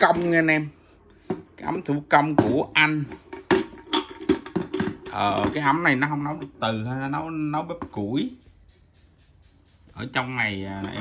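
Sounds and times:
metal kettle knocks and clinks: 0:02.2 - 0:08.4, 0:10.7 - 0:11.0.

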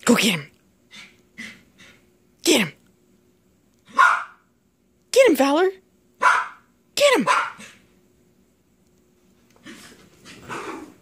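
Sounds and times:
dog barking: 0:03.9 - 0:04.5, 0:06.2 - 0:07.8.

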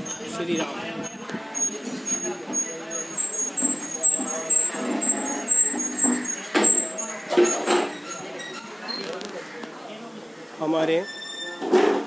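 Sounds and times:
high-pitched squeaks: 0:00.0 - 0:09.2, 0:10.9 - 0:11.7
indistinct voices: 0:00.0 - 0:12.0.

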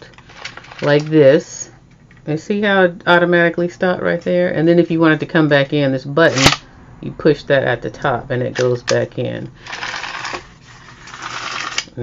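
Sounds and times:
tape measure rattling hiss: 0:09.6 - 0:11.9.

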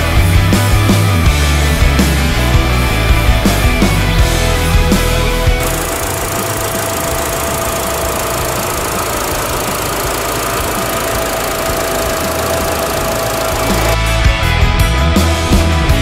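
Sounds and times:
pickup engine idling: 0:04.0 - 0:14.0.

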